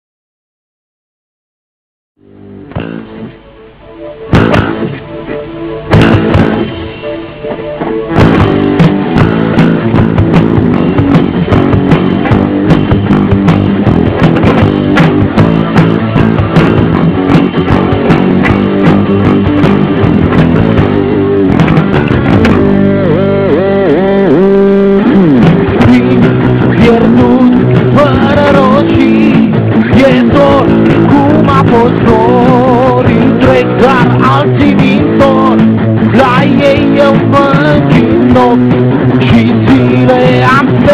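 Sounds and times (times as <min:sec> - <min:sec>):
rock band playing: 0:02.2 - 0:40.9.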